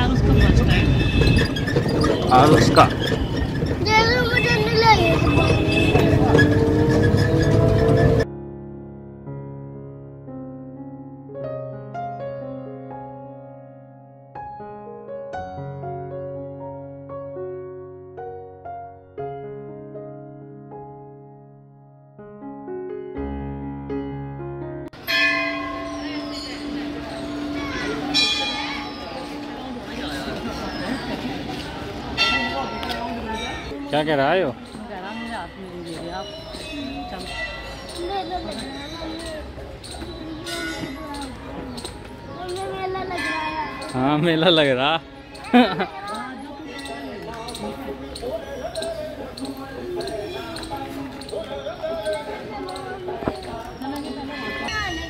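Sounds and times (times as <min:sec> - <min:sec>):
group of people talking: 0:00.0 - 0:08.2, 0:25.0 - 0:55.0
temple bell ringing: 0:25.0 - 0:33.9, 0:34.8 - 0:39.3, 0:40.2 - 0:44.9
faint voices: 0:25.2 - 0:55.0.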